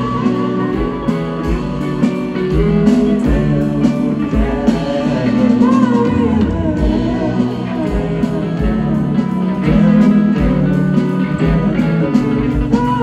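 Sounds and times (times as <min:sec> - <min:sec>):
electric guitar lead lines: 0:00.0 - 0:13.0
live rock band: 0:00.0 - 0:13.0.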